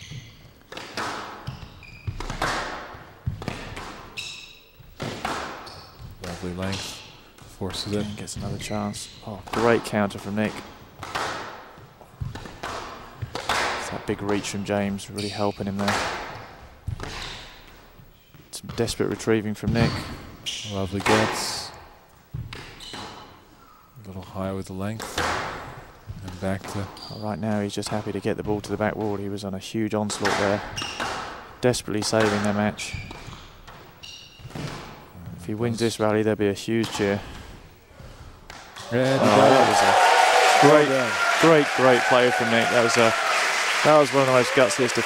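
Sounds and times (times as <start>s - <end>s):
shoe squeak on court floor: 0.0s - 0.6s, 1.4s - 2.4s, 4.1s - 4.9s, 5.6s - 7.0s, 7.8s - 9.3s, 15.1s - 15.8s, 19.7s - 21.2s, 22.6s - 23.9s, 26.9s - 27.4s, 30.7s - 31.2s, 32.8s - 34.6s
squash ball hits echoing: 0.0s - 8.7s, 9.4s - 17.8s, 25.0s - 27.0s, 30.1s - 35.0s.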